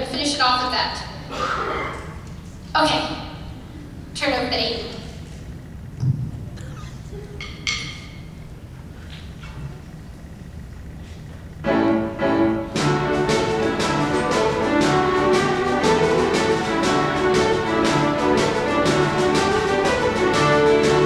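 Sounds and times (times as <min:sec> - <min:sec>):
piano: 0:11.6 - 0:21.0
fiddles playing a jig: 0:11.7 - 0:21.0
drum beat: 0:12.8 - 0:21.0.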